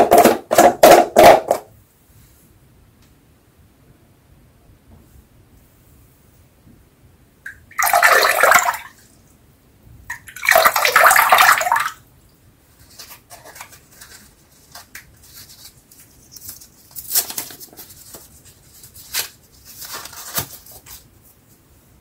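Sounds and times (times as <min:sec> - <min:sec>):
paper crinkling: 0:12.8 - 0:21.4.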